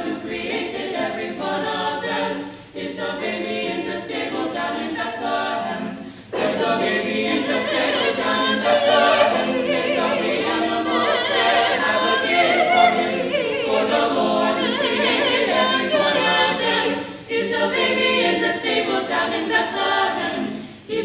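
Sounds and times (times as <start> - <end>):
choir singing in harmony: 0.0 - 21.0.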